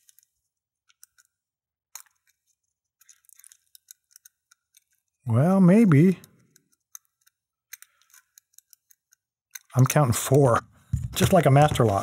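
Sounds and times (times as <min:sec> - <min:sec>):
lock pick clicking: 0:00.9 - 0:02.4, 0:06.2 - 0:10.4.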